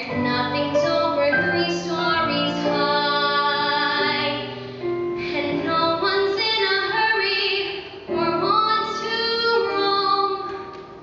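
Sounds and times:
woman singing into a microphone: 0:00.0 - 0:04.6, 0:05.2 - 0:10.6.

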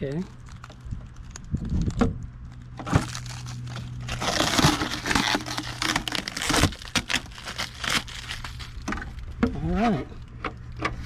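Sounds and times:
plastic wrap crinkling: 0:00.2 - 0:09.2.

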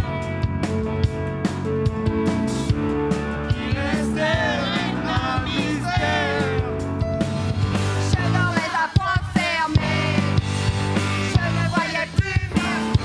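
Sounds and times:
live band with bass and drums: 0:00.0 - 0:13.0
people singing into microphones: 0:03.4 - 0:06.8, 0:08.0 - 0:13.0.

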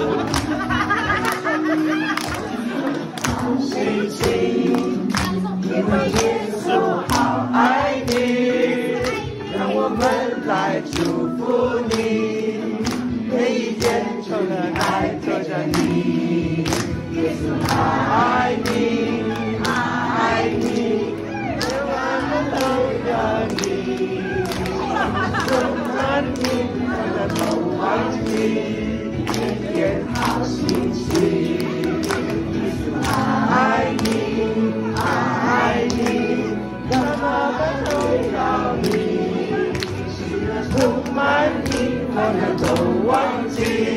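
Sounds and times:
group of people singing: 0:00.0 - 0:43.9
hand claps: 0:00.1 - 0:01.5, 0:02.1 - 0:08.4, 0:09.0 - 0:09.3, 0:09.9 - 0:10.3, 0:10.9 - 0:12.2, 0:12.8 - 0:13.2, 0:13.8 - 0:14.1, 0:14.7 - 0:17.0, 0:17.6 - 0:18.0, 0:18.6 - 0:19.9, 0:20.5 - 0:28.6, 0:29.2 - 0:36.3, 0:36.9 - 0:43.9.

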